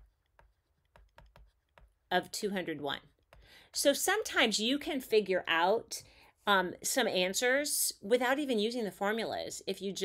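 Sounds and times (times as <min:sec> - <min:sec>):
stylus tapping on tablet: 0:00.0 - 0:02.1, 0:03.1 - 0:03.6.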